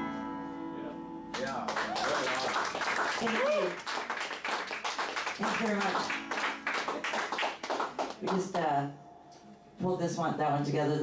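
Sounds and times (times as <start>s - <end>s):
audience clapping: 1.3s - 8.7s.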